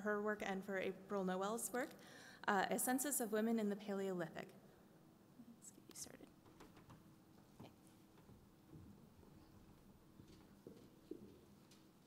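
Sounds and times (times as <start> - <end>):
faint whispering: 5.4 - 6.3.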